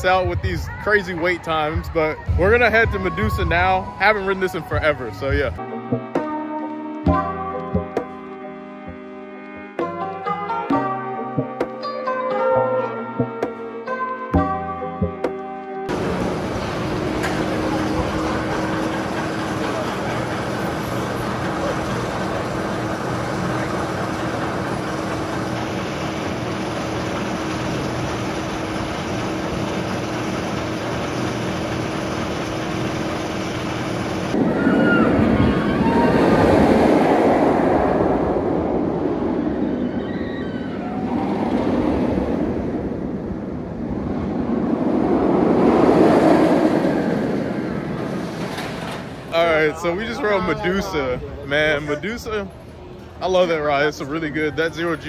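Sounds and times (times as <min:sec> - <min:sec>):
roller coaster train rumbling on track: 0:00.0 - 0:05.6, 0:15.9 - 0:55.0
steady low hum: 0:15.9 - 0:35.5.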